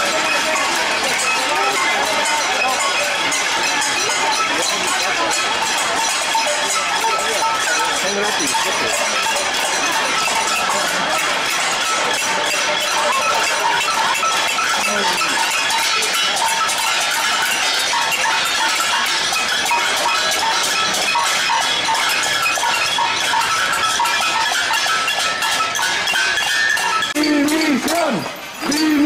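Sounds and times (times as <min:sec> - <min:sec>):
crowd of voices: 0:00.0 - 0:29.0
metallic clanging and clinking: 0:00.0 - 0:29.0.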